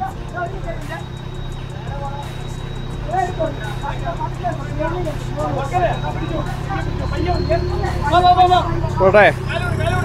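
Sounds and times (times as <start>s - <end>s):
men calling out: 0.0s - 10.0s
suv engine running under load: 0.0s - 10.0s.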